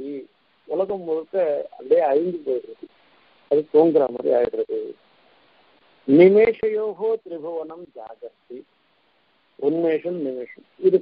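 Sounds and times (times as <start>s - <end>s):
man speaking: 0.0s - 2.9s, 3.5s - 5.0s, 6.0s - 8.6s, 9.6s - 11.0s.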